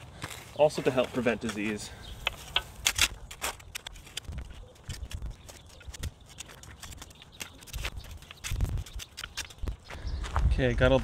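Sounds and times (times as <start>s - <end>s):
shovel digging dry soil: 0.0s - 10.0s.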